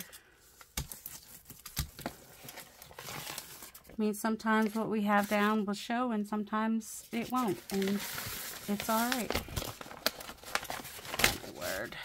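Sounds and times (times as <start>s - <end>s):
paper bag rustling and crinkling: 1.0s - 5.6s, 7.0s - 12.0s.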